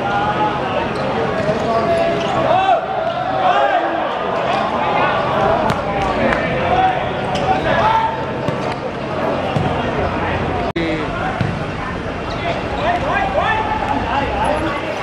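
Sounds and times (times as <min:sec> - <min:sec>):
football being kicked: 0:11.4 - 0:11.6.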